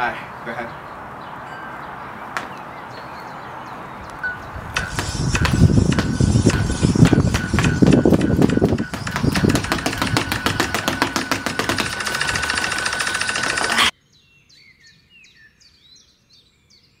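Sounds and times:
sneaker footfalls on hard ground: 0:04.8 - 0:12.0.

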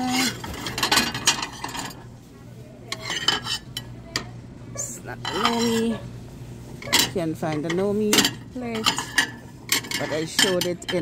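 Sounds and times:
ceramic mugs clinking: 0:04.8 - 0:06.0, 0:06.8 - 0:11.0.

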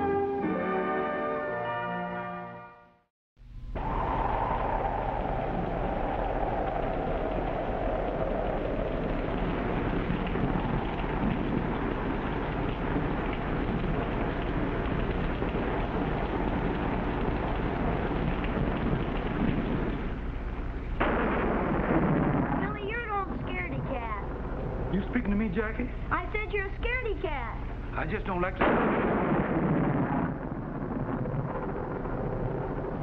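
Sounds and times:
thunder rumbling: 0:03.4 - 0:33.0
high falling tone: 0:03.5 - 0:10.6
heavy rain downpour: 0:03.5 - 0:26.2.

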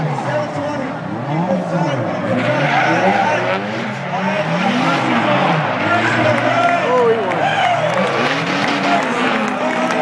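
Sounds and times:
car engine revving: 0:00.0 - 0:10.0
tyres skidding: 0:00.0 - 0:10.0.

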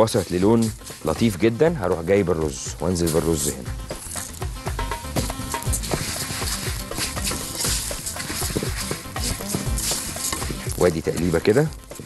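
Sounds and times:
background music: 0:00.0 - 0:12.0
light sizzle: 0:03.0 - 0:12.0
spatula scraping rice in pot: 0:05.2 - 0:11.6.

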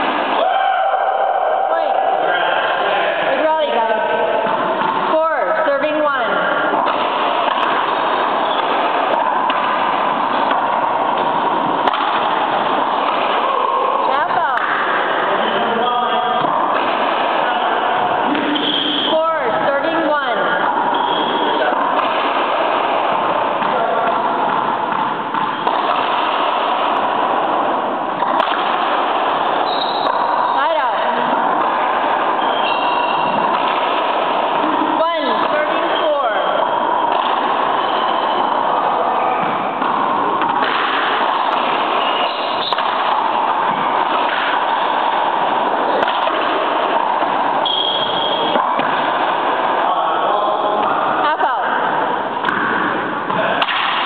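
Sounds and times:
indistinct chatter of voices: 0:00.0 - 0:06.8, 0:10.8 - 0:25.4
dense background noise: 0:00.0 - 0:54.0.

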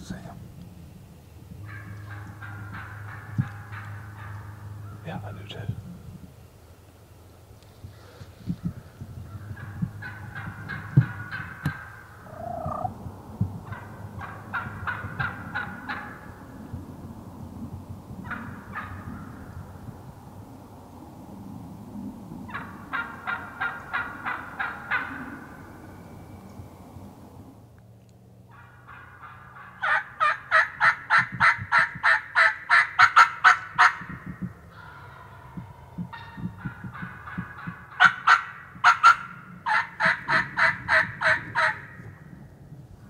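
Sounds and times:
wild turkey calling: 0:01.6 - 0:05.5, 0:07.9 - 0:13.0, 0:13.6 - 0:16.6, 0:22.4 - 0:27.3, 0:28.5 - 0:34.1, 0:34.7 - 0:42.2.

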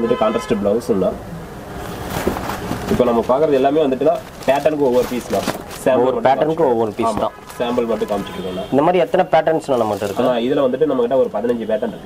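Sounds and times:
man talking: 0:00.0 - 0:01.2, 0:02.9 - 0:12.0.

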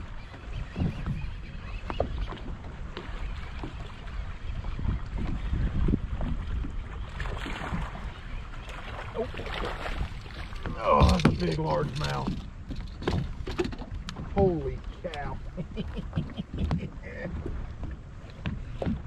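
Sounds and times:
water slapping against hull: 0:00.0 - 0:19.0
wind buffeting microphone: 0:00.0 - 0:19.0.

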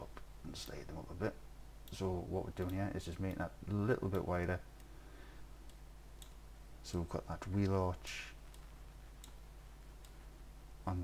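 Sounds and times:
low steady hum: 0:00.0 - 0:11.0
computer mouse clicks: 0:08.5 - 0:09.4.

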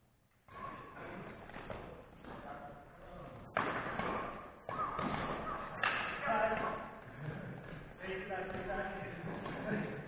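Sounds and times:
badminton racket hitting shuttlecock: 0:03.5 - 0:07.0.

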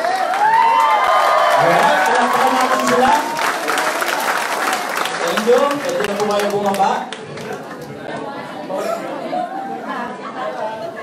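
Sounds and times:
crowd chatter in a large room: 0:00.0 - 0:11.0.

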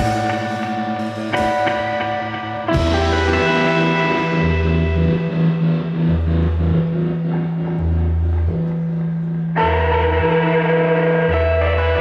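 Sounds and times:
electric guitar chords: 0:00.0 - 0:12.0
low drone: 0:00.0 - 0:12.0
pulsing bass note: 0:02.7 - 0:10.4.

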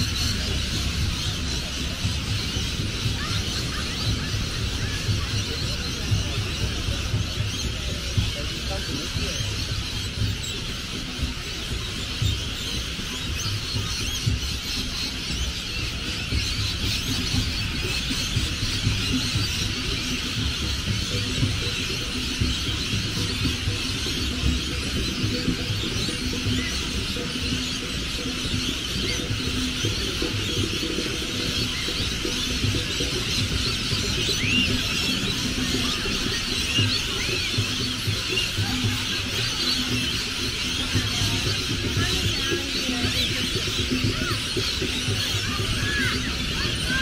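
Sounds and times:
birds screeching and chattering: 0:00.0 - 0:47.0.

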